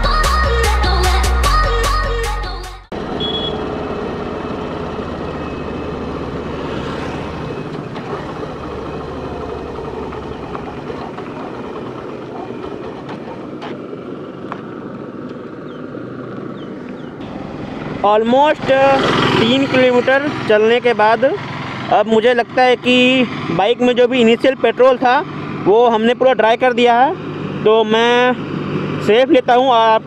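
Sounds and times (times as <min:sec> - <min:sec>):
motorcycle engine running: 0:02.9 - 0:30.0
wind and road noise: 0:02.9 - 0:30.0.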